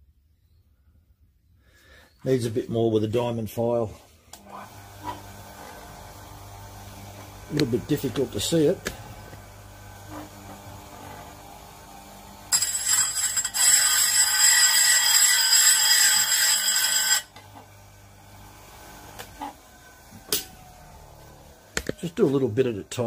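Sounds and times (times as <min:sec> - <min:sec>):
grinder motor hum: 0:04.4 - 0:23.0
file grinding on abrasive wheel: 0:10.0 - 0:17.7.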